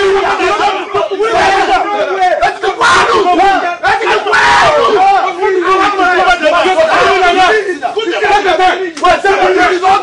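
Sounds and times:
men yelling and shouting: 0:00.0 - 0:10.0.

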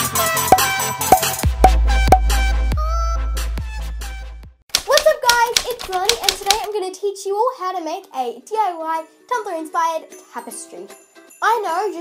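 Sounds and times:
typewriter key clicks: 0:04.7 - 0:06.7
girl talking: 0:04.8 - 0:12.0.

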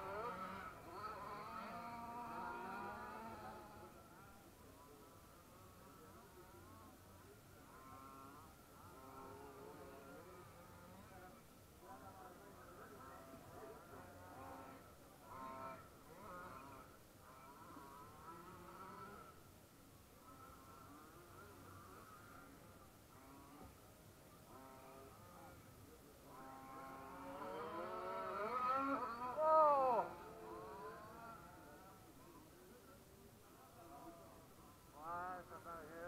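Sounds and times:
radio-controlled car motors whining: 0:26.4 - 0:31.8.

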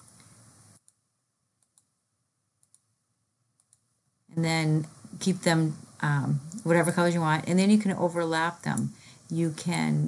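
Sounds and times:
computer mouse clicks: 0:01.6 - 0:02.0, 0:02.6 - 0:02.9, 0:03.6 - 0:03.9.

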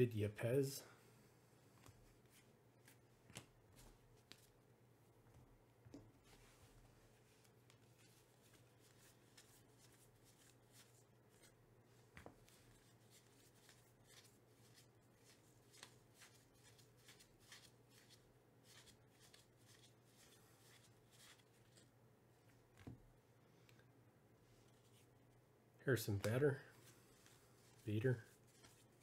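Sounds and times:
cards flipped by hand: 0:01.8 - 0:04.6, 0:07.4 - 0:11.5, 0:12.1 - 0:21.9, 0:26.2 - 0:29.0.

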